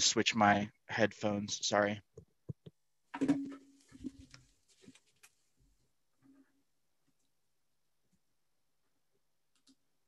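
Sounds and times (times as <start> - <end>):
microphone handling clicks and rustles: 2.1 - 5.5.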